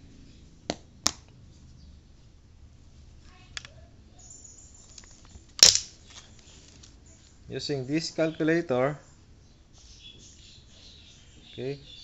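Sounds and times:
sharp plastic clack: 4.9s - 6.2s.

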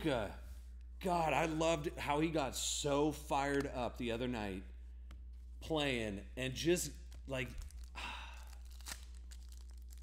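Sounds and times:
foil wrapper crinkling: 7.1s - 10.0s
small clicks and crackles: 8.6s - 10.0s.

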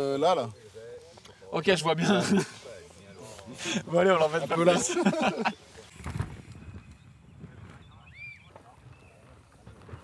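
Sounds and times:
man laughing: 2.0s - 2.6s, 4.6s - 5.7s.

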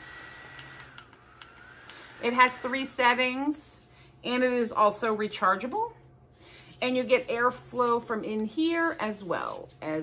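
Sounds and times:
small electric fan motor whining: 0.0s - 5.6s.

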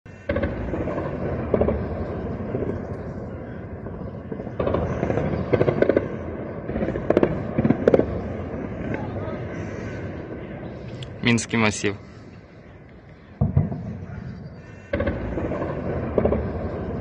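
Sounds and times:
gunshots: 0.1s - 10.9s, 13.4s - 17.0s.

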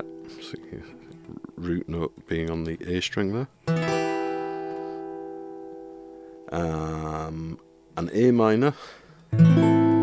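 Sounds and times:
acoustic guitar chord strum: 0.0s - 2.2s, 3.6s - 8.2s, 9.2s - 10.0s.

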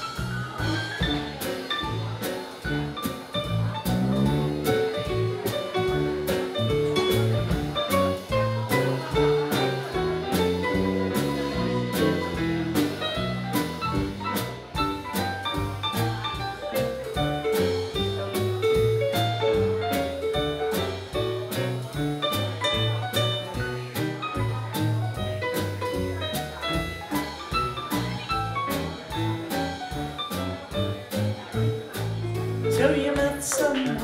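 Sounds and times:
drum kit with cymbals: 0.0s - 34.0s
electric bass walking: 0.2s - 34.0s
keyboard short notes: 8.8s - 14.2s.

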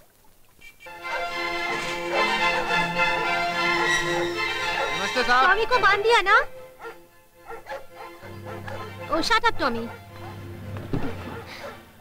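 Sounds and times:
large dog barking: 1.0s - 5.2s, 6.7s - 9.2s, 9.8s - 12.0s.

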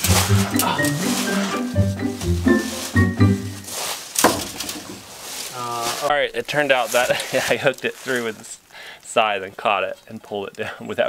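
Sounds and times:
man laughing: 0.0s - 1.8s
background music: 0.0s - 3.8s.

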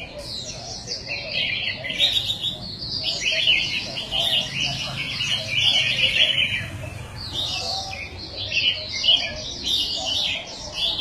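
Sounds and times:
birds chirping and warbling: 0.0s - 11.0s
murmur of voices: 0.0s - 11.0s.

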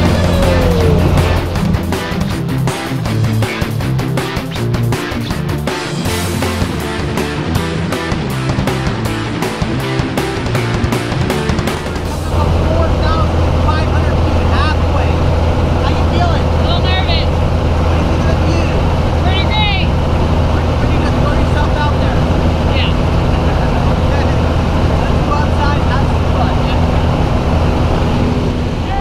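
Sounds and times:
faint voices: 0.0s - 1.8s
plane engine and propeller droning: 0.0s - 29.0s.

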